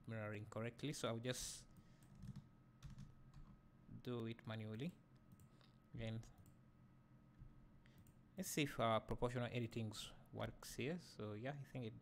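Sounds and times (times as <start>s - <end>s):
keyboard and mouse clicks: 2.0s - 3.6s.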